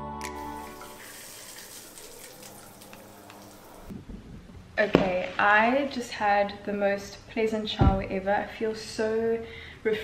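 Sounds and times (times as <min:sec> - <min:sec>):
shower water spraying: 0:00.2 - 0:03.9.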